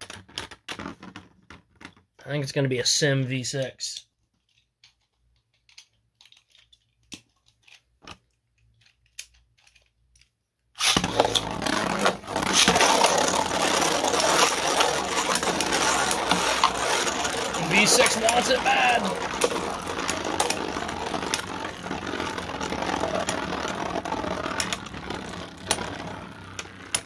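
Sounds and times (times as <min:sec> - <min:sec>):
spinning tops rattling in stadium: 0:10.8 - 0:27.0.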